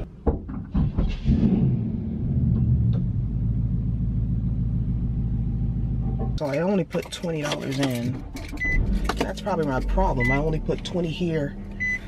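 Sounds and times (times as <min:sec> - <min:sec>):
knocks: 0:00.1 - 0:01.2
muffled mechanical rumble in car: 0:01.1 - 0:12.0.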